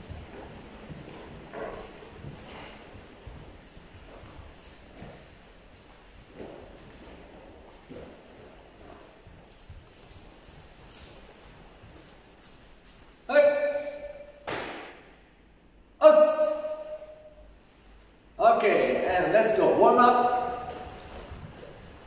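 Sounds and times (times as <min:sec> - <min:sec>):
bare feet thudding on mats: 0:00.0 - 0:13.0, 0:14.4 - 0:15.1, 0:20.6 - 0:22.0
man shouting: 0:13.3 - 0:14.4, 0:16.0 - 0:17.3, 0:18.4 - 0:20.9.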